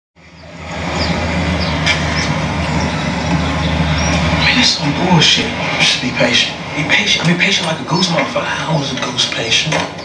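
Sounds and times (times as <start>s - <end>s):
low steady rumble: 0.2s - 9.7s.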